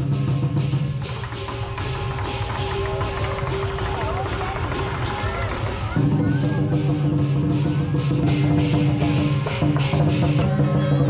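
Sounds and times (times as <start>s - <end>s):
large drum beating: 0.0s - 11.0s.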